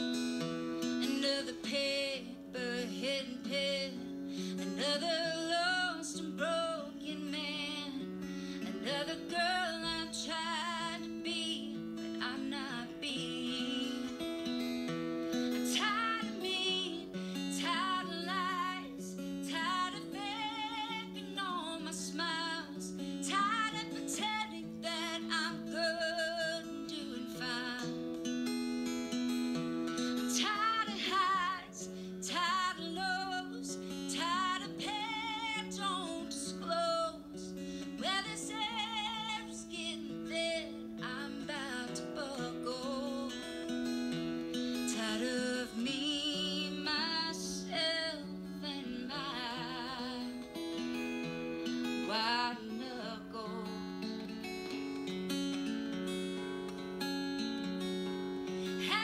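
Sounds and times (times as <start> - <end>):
acoustic guitar: 0.0 - 59.0
woman singing with vibrato: 0.8 - 14.8, 15.4 - 28.1, 30.2 - 43.8, 44.8 - 51.0, 51.6 - 54.3, 58.6 - 59.0.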